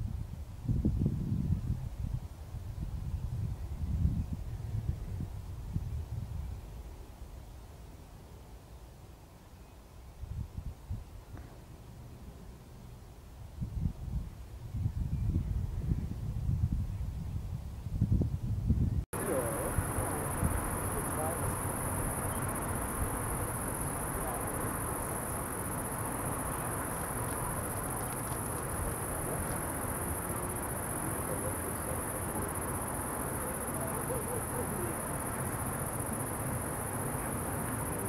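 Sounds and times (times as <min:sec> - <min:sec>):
low background hiss and rumble: 0:00.0 - 0:38.0
night insects chirping: 0:19.2 - 0:38.0.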